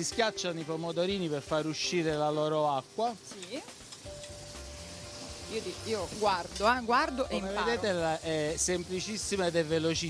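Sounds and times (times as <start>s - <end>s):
food sizzling in a frying pan: 0.0s - 10.0s.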